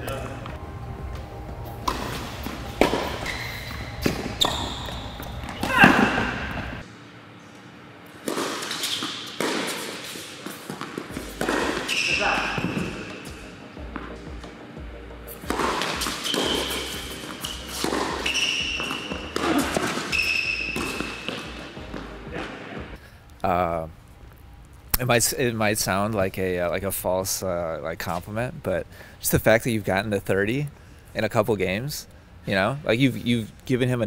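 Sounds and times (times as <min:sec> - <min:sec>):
shoes squeaking on court: 0:00.0 - 0:06.8, 0:07.5 - 0:14.6, 0:15.3 - 0:22.9
ball bouncing: 0:01.8 - 0:06.8, 0:08.2 - 0:14.6, 0:15.3 - 0:22.6
racquets striking ball: 0:01.8 - 0:06.8, 0:08.2 - 0:14.6, 0:15.3 - 0:22.6.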